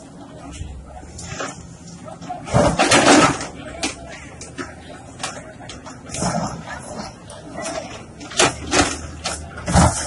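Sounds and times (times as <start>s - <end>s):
excavator running: 0.0s - 10.0s
concrete blocks crashing down: 2.5s - 3.6s.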